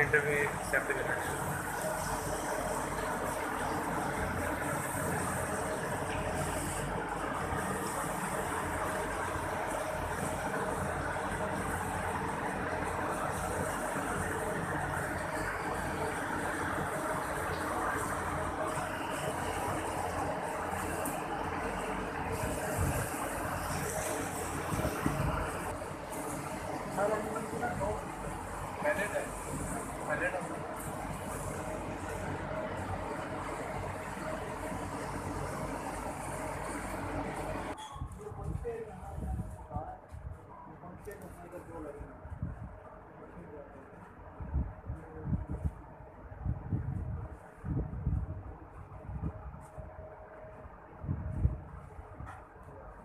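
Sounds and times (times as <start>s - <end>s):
water sprinklers spraying: 0.0s - 37.8s
electric fans humming: 0.0s - 53.0s.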